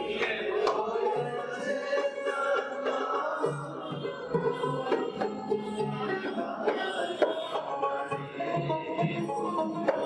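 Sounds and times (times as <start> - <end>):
plucked folk lutes: 0.0 - 10.0.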